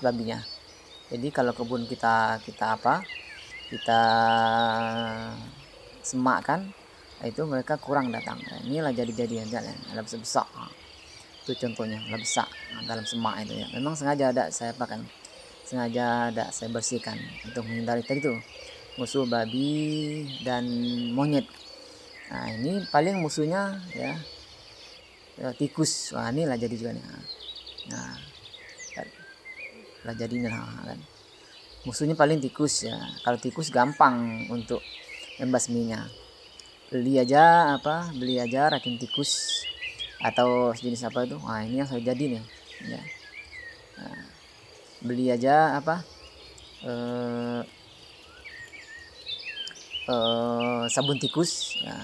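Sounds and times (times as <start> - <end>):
faint bird or insect chirps: 0.0 - 52.0.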